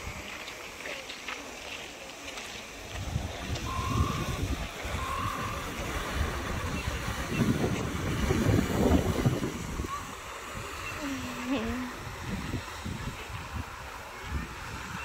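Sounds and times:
wind buffeting microphone: 2.7 - 15.0.

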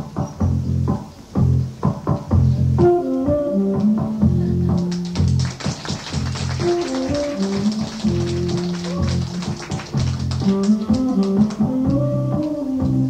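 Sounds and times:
bass line: 0.0 - 13.0
busy drums: 0.0 - 13.0
live band music: 2.7 - 13.0.

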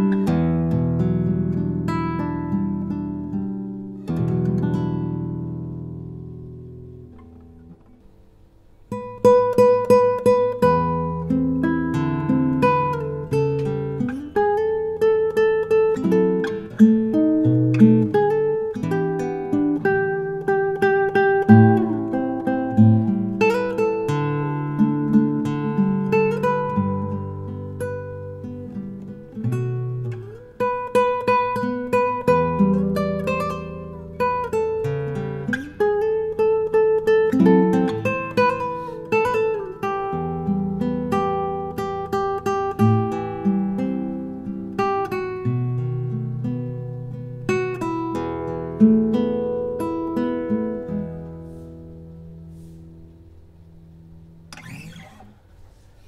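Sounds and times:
acoustic guitar fingerstyle: 0.0 - 56.0.

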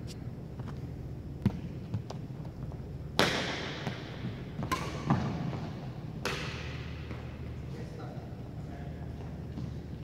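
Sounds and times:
racket hitting shuttlecock: 3.1 - 7.5.

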